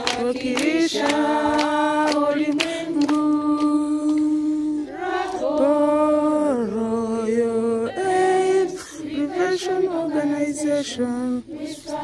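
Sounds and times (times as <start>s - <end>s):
children singing unaccompanied: 0.0s - 12.0s.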